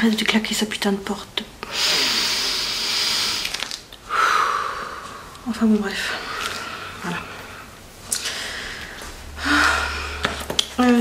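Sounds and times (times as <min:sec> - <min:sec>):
breathy sigh: 0:01.6 - 0:05.4, 0:06.2 - 0:10.5.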